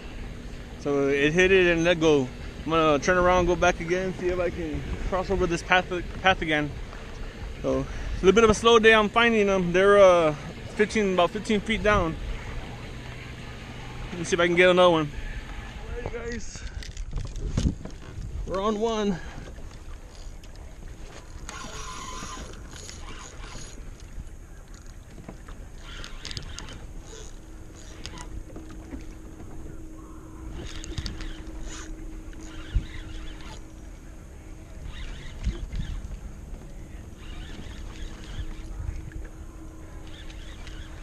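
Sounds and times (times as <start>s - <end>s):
faint steady hum: 0.0s - 41.0s
water sloshing against kayak hull: 0.0s - 41.0s
fishing reel clicks and handling: 25.8s - 28.3s, 30.6s - 33.7s, 40.0s - 41.0s.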